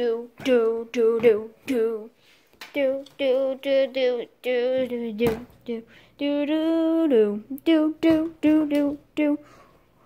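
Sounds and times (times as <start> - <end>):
person singing wordless tune: 0.0 - 9.6.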